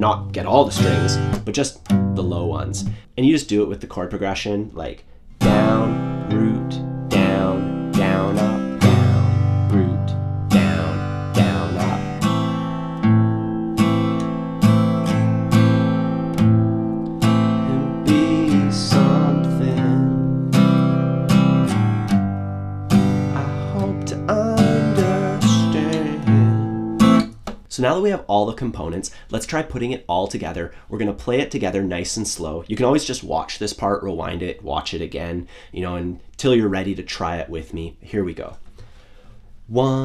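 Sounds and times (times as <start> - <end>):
acoustic guitar strumming: 0.0 - 3.0, 5.4 - 27.5
bass string strums: 0.0 - 3.1, 5.4 - 27.4.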